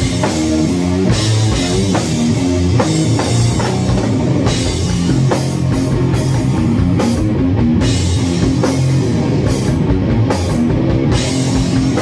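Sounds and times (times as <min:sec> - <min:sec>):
drum kit with cymbals: 0:00.0 - 0:12.0
heavy electric guitar riff: 0:00.0 - 0:12.0.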